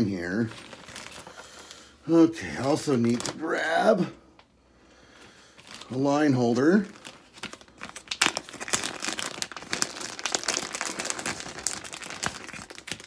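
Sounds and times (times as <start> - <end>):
plastic packaging crinkling: 0.0 - 2.0, 2.6 - 3.9, 5.5 - 13.0.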